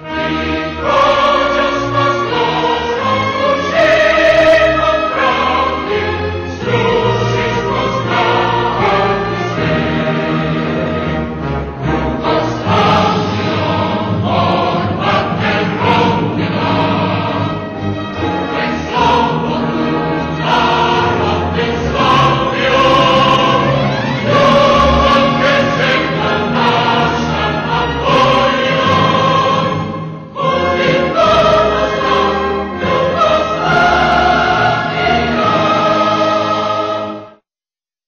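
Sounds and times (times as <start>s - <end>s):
choir singing long held notes: 0.0s - 37.4s
instrumental accompaniment: 0.0s - 37.4s.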